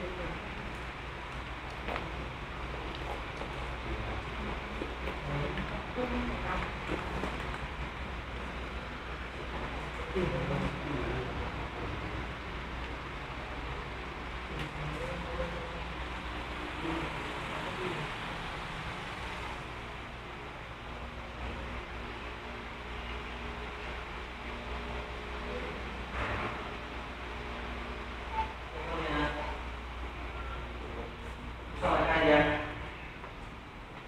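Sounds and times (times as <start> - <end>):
low rumble and hiss: 0.0 - 34.0
faint voices: 1.9 - 22.2.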